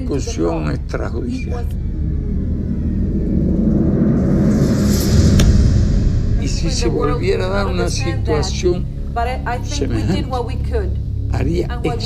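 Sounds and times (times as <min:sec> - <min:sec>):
low rumbling drone: 0:00.0 - 0:12.0
hissing whoosh: 0:01.7 - 0:09.0
sharp hit: 0:01.8 - 0:09.1.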